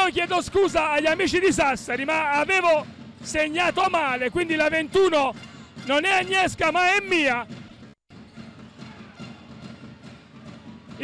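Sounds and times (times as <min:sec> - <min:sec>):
basketball play on court: 0:00.1 - 0:11.0.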